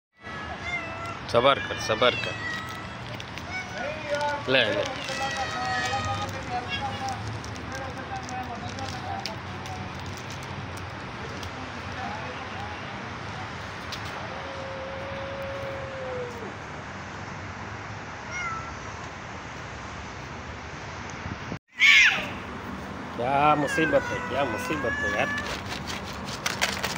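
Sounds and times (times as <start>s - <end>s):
cats meowing: 0.2s - 7.3s, 18.2s - 18.8s, 23.2s - 25.7s
kittens mewing: 0.2s - 7.3s, 18.3s - 18.8s, 23.2s - 25.8s
steady outdoor hiss: 0.2s - 26.9s.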